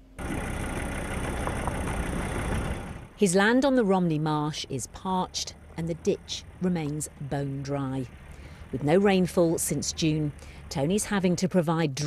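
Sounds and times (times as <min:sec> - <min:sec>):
vehicle driving on dirt track: 0:00.0 - 0:12.0.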